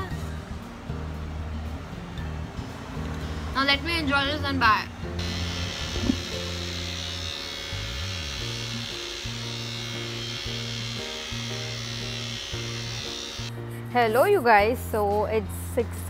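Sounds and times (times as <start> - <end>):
background music: 0.0 - 16.0
electric trimmer buzzing: 5.2 - 13.6.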